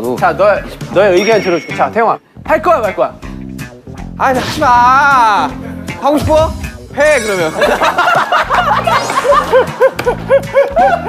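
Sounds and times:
background music: 0.0s - 11.0s
person laughing: 7.2s - 11.0s.

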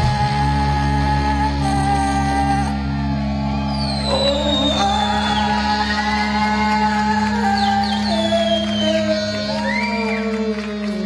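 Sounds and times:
rock band with electric guitars: 0.0s - 11.0s.

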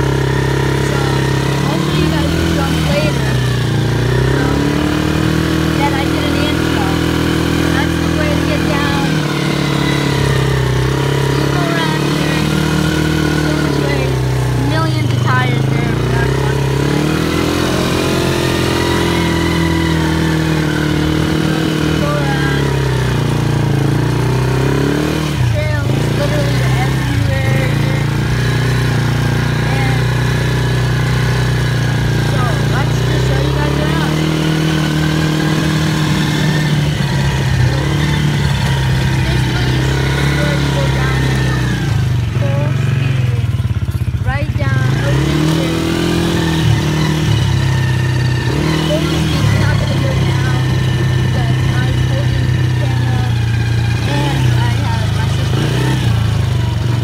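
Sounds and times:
quad engine revving: 0.0s - 57.0s.

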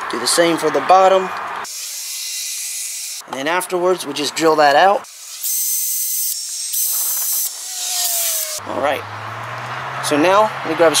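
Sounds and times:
cordless drill boring into wood: 5.1s - 8.6s.

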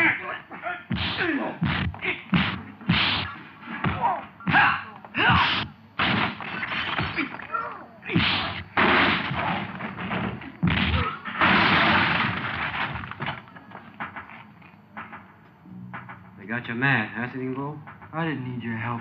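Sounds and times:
punch smacks: 0.9s - 4.7s, 5.3s - 7.4s, 8.1s - 9.6s, 10.6s - 12.4s
bodies crashing into shelves: 8.1s - 14.4s
film music score: 13.4s - 19.0s.

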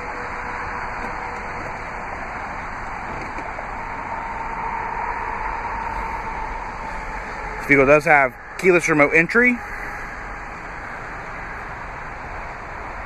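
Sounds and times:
car engine and road hum: 0.0s - 13.0s.

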